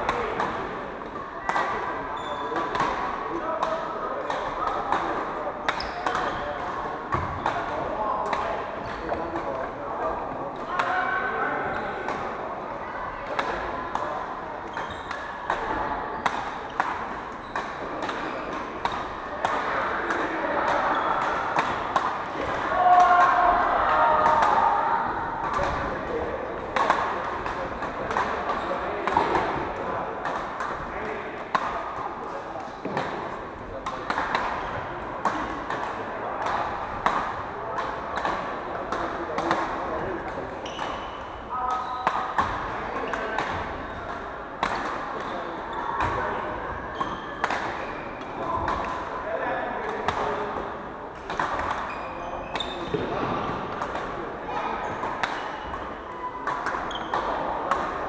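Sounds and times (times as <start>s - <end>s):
rackets striking shuttlecocks: 1.4s - 9.7s, 13.3s - 32.0s, 32.6s - 49.2s, 49.8s - 50.6s, 51.2s - 58.0s.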